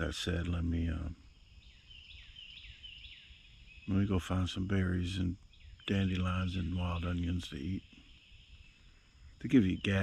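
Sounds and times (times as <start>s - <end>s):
man's voice: 0.0s - 1.2s, 3.9s - 7.8s, 9.4s - 10.0s
bird singing: 0.0s - 10.0s
outdoor background noise: 0.0s - 10.0s.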